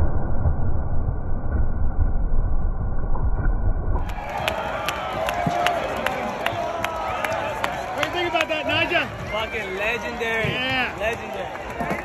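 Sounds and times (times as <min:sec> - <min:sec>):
hand claps: 0:04.0 - 0:09.0
crowd noise: 0:04.0 - 0:12.0.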